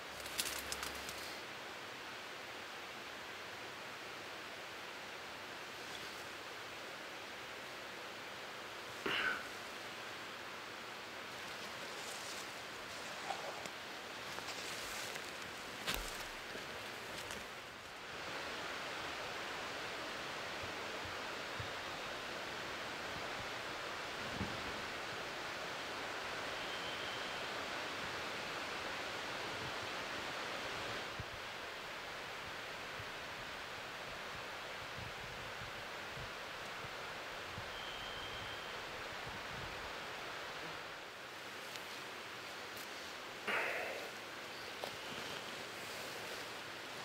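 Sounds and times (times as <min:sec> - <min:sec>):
night forest hiss: 0:00.0 - 0:47.0
faint high chirps: 0:26.5 - 0:27.4, 0:37.6 - 0:38.9.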